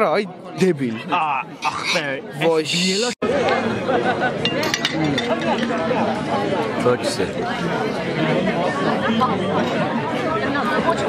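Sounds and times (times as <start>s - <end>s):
dinner guests chattering: 0.0s - 11.0s
tableware clinking: 4.4s - 6.0s.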